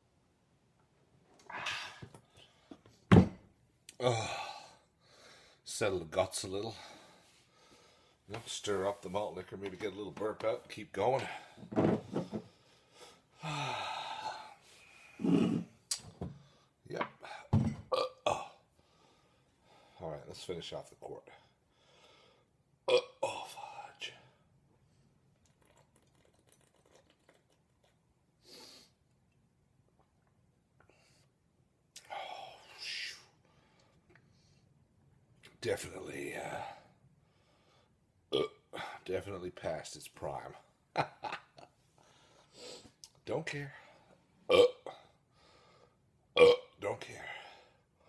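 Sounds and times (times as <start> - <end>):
man burping loudly: 15.2 - 15.7, 17.9 - 18.6, 22.9 - 23.4, 38.3 - 38.8, 44.5 - 45.0, 46.4 - 46.8.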